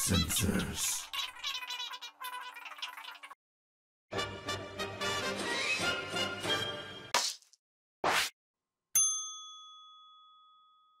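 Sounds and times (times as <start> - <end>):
bright bell-like ding: 9.0 - 11.0.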